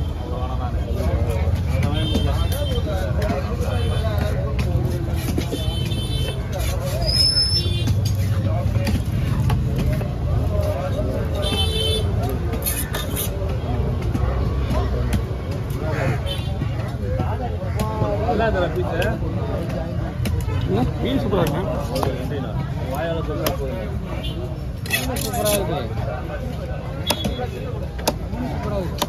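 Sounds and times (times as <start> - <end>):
babble of voices: 0.0 - 29.0
knife chopping into wooden block: 27.0 - 29.0.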